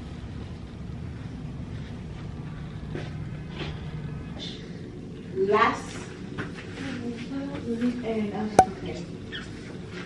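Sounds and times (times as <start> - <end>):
room noise hum and rumble: 0.0 - 7.7.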